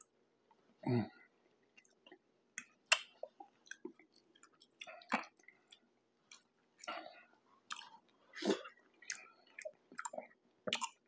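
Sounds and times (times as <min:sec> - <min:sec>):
wet chewing and mouth clicks: 0:01.6 - 0:11.0.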